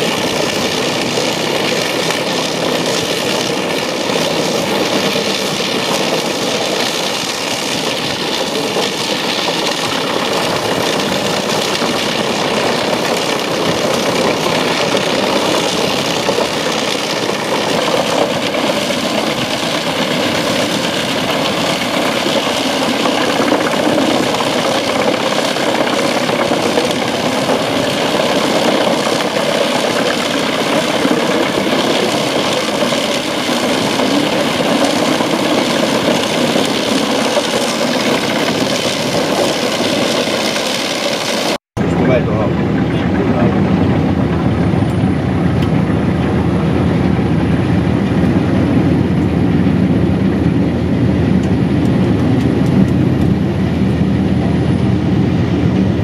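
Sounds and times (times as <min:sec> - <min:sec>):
wood chipper running: 0:00.0 - 0:56.0.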